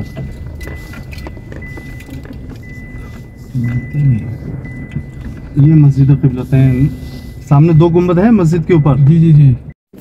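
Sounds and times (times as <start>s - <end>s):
car road rumble: 0.0s - 10.0s.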